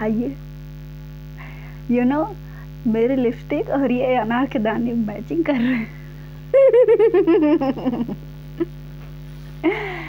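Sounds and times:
woman giggling: 0:05.5 - 0:06.0, 0:06.6 - 0:08.8, 0:09.6 - 0:10.0.

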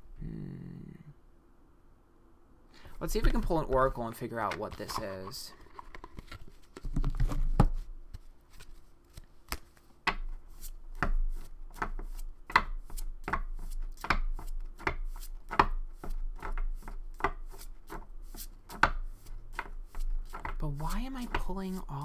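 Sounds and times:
cards being shuffled: 0:03.0 - 0:22.0.

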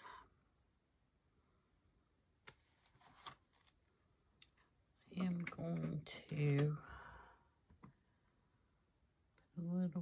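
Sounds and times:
paper journal rustling: 0:02.4 - 0:03.8.

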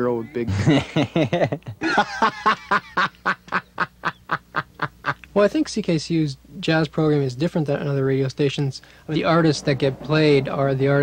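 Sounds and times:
man laughing: 0:00.5 - 0:05.3.

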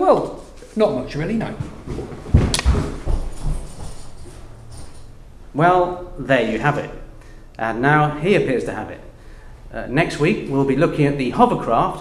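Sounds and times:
low room noise: 0:00.0 - 0:12.0
footsteps on hard floor: 0:01.4 - 0:04.9.

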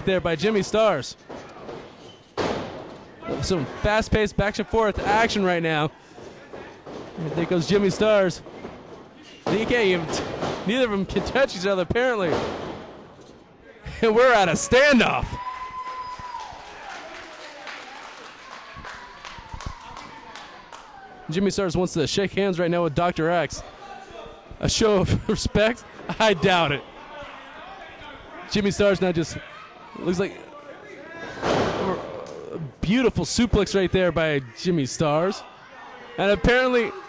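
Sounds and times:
faint hall noise: 0:00.0 - 0:37.0
crowd clapping: 0:15.4 - 0:21.0.

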